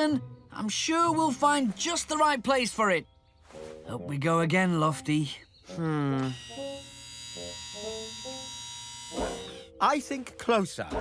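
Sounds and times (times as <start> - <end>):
winch motor whirring: 6.2 - 9.8.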